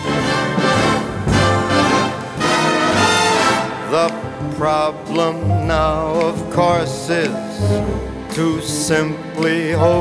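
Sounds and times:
orchestral brass with trombones: 0.0 - 6.1, 7.5 - 10.0.

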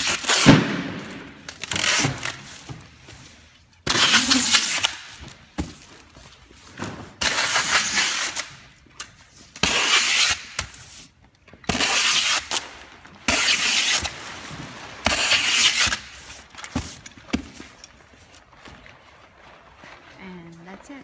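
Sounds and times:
packing tape pulled from dispenser: 0.0 - 2.9, 3.8 - 18.8.

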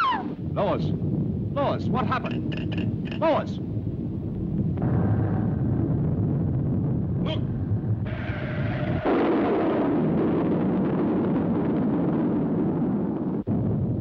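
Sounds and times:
cartoon explosion rumble: 0.0 - 14.0.

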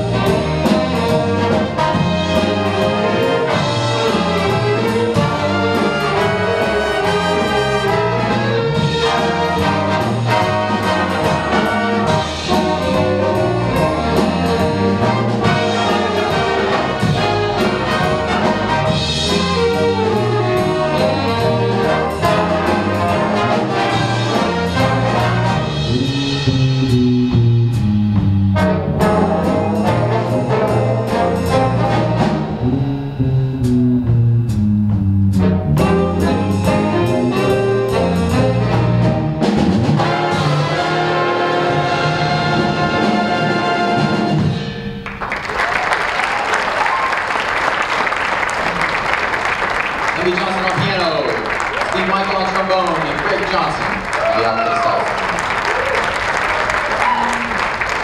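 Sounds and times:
big band jazz: 0.0 - 58.0.

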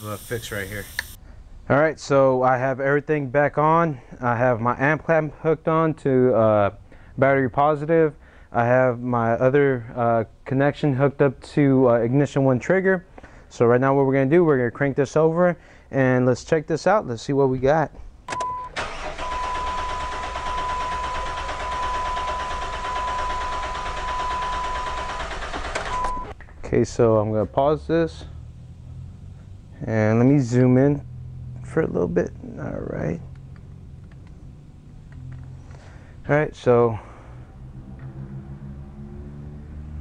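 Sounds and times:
engine cranking on starter motor: 18.4 - 26.4.

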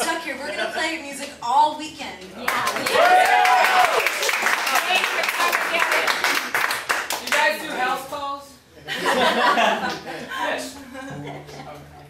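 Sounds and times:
audience clapping: 2.4 - 7.9.

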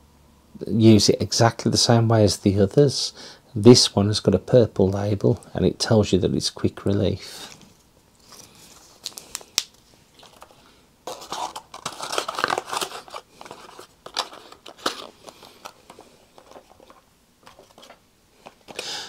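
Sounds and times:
plastic bottles rustling: 8.2 - 19.0.

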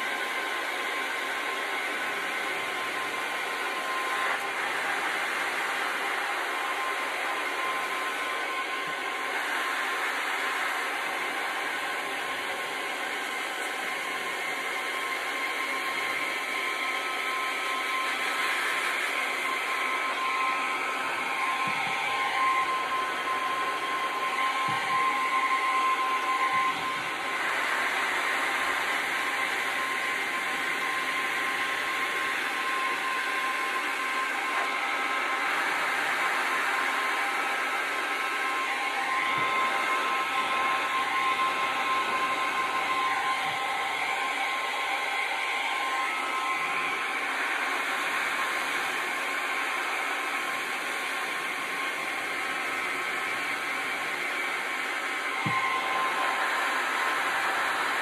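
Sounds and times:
fan motor whine: 0.0 - 58.0
heat gun blowing air: 0.0 - 58.0.

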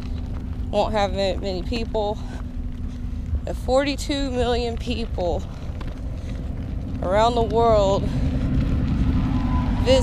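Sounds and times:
stroller rolling on gravel: 0.0 - 10.0.

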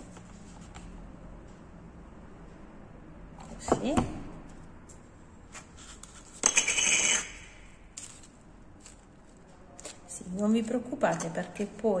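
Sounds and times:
scratchy rubbing on foam: 5.8 - 7.5.

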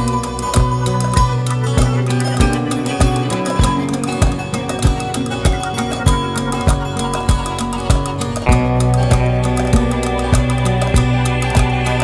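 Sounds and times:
music with low thumping beat: 0.0 - 12.0.

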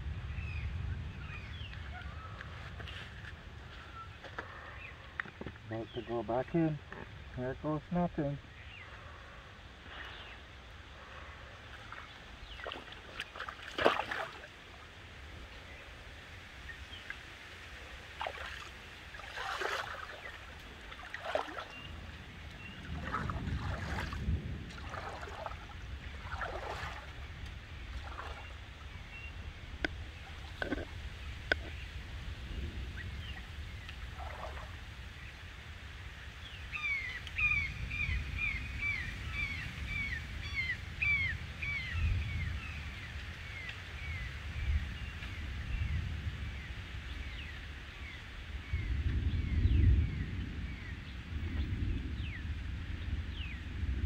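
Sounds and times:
steady low rumble: 0.0 - 13.3, 19.9 - 35.3
water sloshing around legs: 11.6 - 14.9, 18.1 - 28.8, 34.2 - 34.8.

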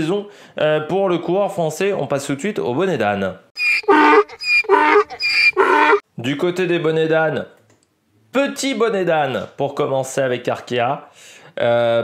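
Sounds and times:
donkey braying: 3.6 - 6.0.

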